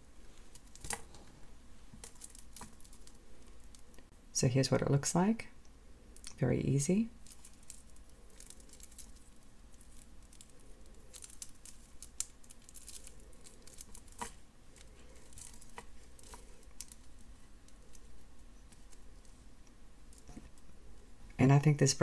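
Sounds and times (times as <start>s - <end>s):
beads clicking and clinking: 2.0s - 4.0s, 7.2s - 20.7s.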